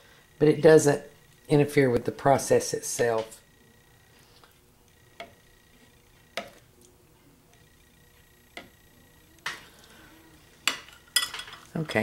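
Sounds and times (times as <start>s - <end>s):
metal spoon clinking on glass: 10.6s - 11.7s.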